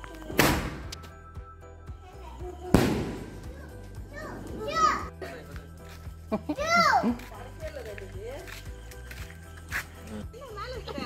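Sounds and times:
firecracker bang and crackle: 0:00.3 - 0:01.0, 0:02.7 - 0:03.6.

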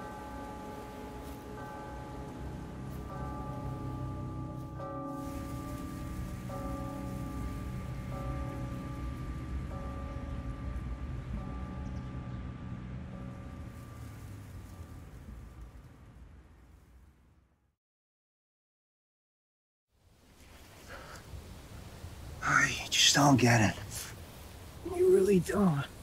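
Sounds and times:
sustained film score chords: 0:00.0 - 0:17.5.

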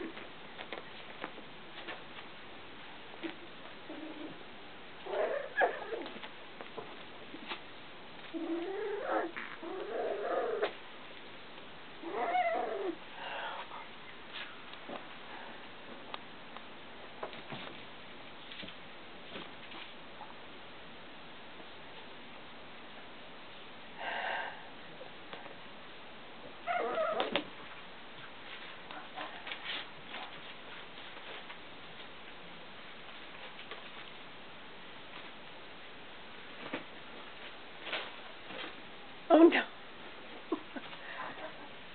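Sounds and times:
recording hiss: 0:00.0 - 0:41.9
puppy whining: 0:03.9 - 0:04.4, 0:05.0 - 0:06.3, 0:08.2 - 0:10.8, 0:12.0 - 0:13.0, 0:26.6 - 0:27.5.

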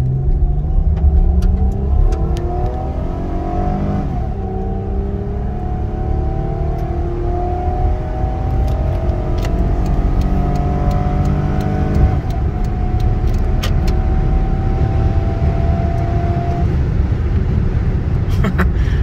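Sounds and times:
automatic transmission upshifting: 0:00.0 - 0:17.1
car engine revving at full throttle: 0:00.0 - 0:19.0.

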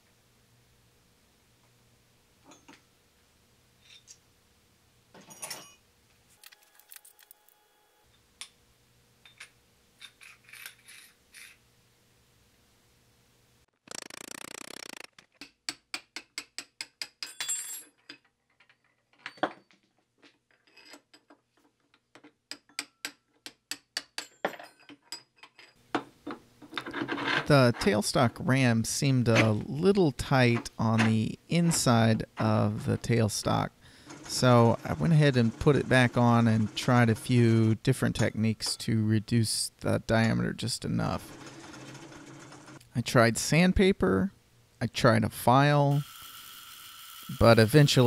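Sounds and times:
hammer tapping metal wrench: 0:22.2 - 0:25.3.

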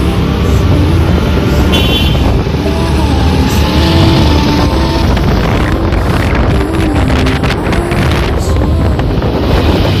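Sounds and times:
motorbike engine rumble: 0:00.0 - 0:10.0
traffic: 0:00.0 - 0:10.0
wind on microphone: 0:00.5 - 0:10.0.

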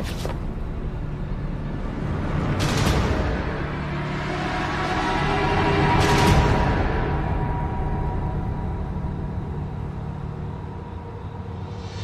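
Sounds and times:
low rumbling suspense score drone: 0:00.4 - 0:12.0.

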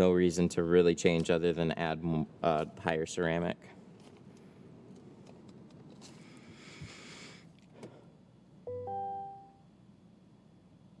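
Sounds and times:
button click: 0:08.7 - 0:09.5
dashboard electronic chime: 0:08.7 - 0:09.6.

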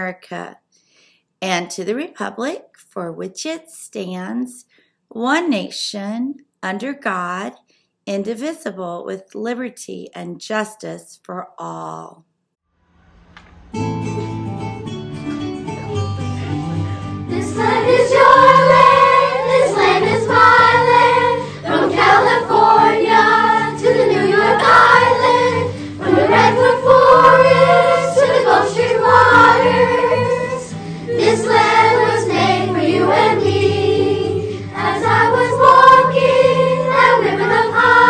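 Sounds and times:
children's choir singing: 0:17.3 - 0:38.0.

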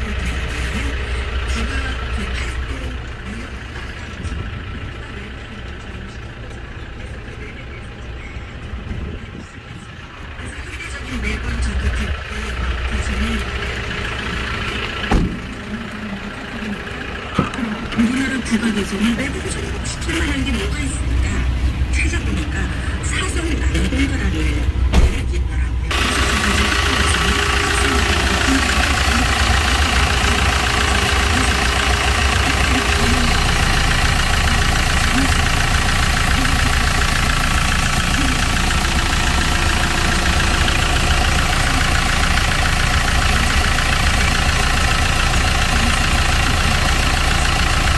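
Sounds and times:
diesel engine idling: 0:00.0 - 0:47.9.

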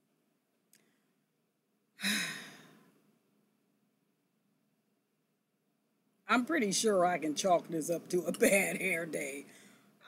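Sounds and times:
woman sighing: 0:02.0 - 0:02.8.

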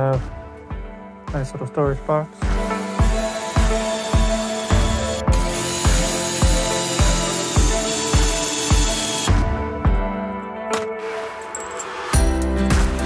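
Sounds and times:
background music with steady beat: 0:00.0 - 0:13.0
drill boring into wood: 0:02.6 - 0:09.3.

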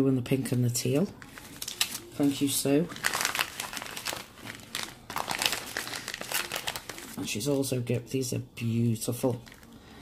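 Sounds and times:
plastic wrapping crinkling: 0:00.8 - 0:07.8, 0:09.2 - 0:10.0.

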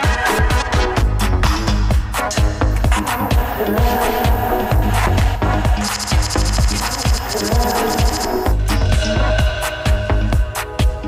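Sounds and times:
house music kick drum: 0:01.9 - 0:11.0
high-pitched rattling electronic layer: 0:03.0 - 0:05.2, 0:05.8 - 0:08.6.

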